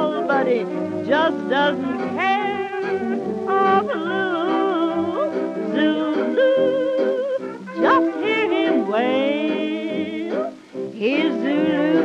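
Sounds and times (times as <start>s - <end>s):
hot jazz band recording: 0.0s - 12.0s
sliding melody lines: 0.0s - 12.0s.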